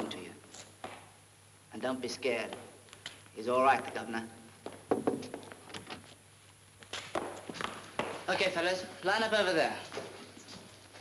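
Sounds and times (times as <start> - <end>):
footsteps on hard floor: 6.8 - 8.4, 9.8 - 11.0.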